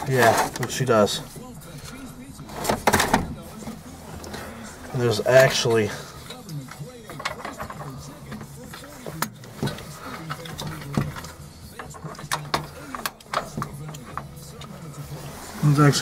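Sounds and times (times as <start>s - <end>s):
faint radio talk: 0.0s - 16.0s.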